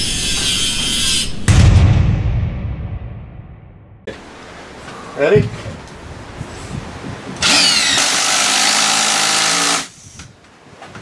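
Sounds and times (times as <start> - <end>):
deep boom hit: 1.4 - 4.1.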